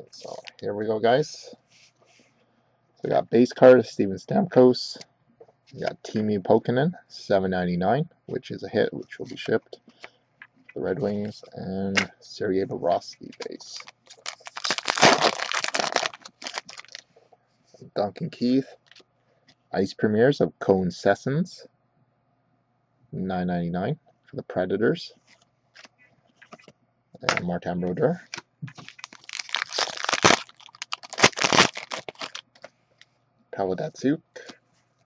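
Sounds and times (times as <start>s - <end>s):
foil wrapper tearing and crinkling: 13.4s - 17.0s, 28.7s - 32.7s.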